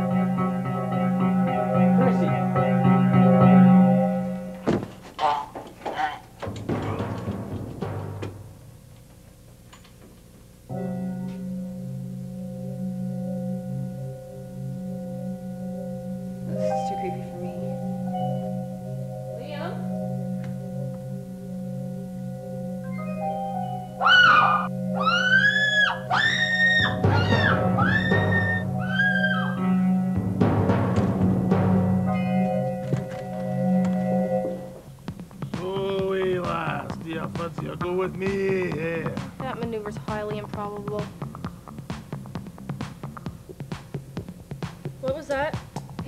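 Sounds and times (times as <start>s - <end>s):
music drone: 0.0s - 4.7s, 10.7s - 44.7s
sharp thunk: 4.6s - 5.0s, 6.4s - 8.6s
theremin-like tone swooping: 22.8s - 30.2s.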